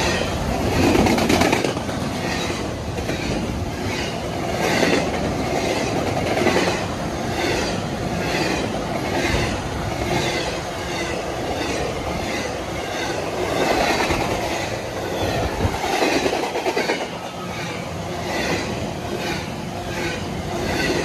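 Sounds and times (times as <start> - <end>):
freight train wheels rumbling on rail: 0.0 - 21.0
rhythmic clickety-clack of wheels: 0.0 - 21.0.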